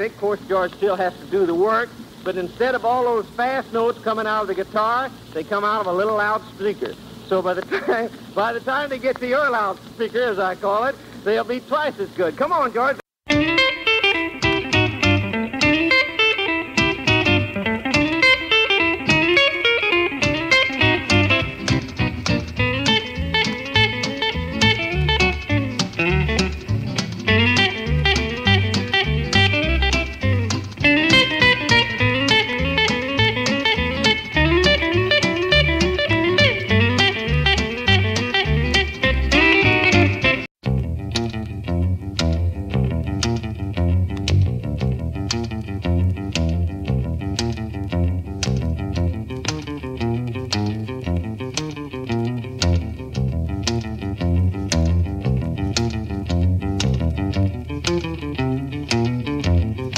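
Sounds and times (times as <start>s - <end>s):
electric jazz guitar runs: 13.3s - 59.9s
low bass notes: 13.3s - 59.9s.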